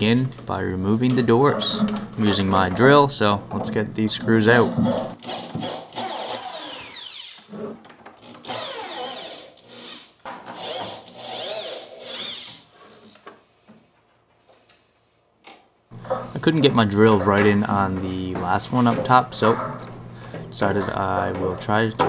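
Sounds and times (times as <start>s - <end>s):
electric drill backing out screws: 5.2s - 13.3s.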